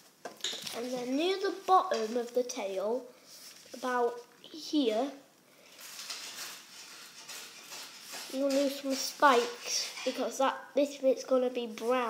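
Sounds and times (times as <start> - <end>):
pencil scratching on paper: 5.9 - 10.3.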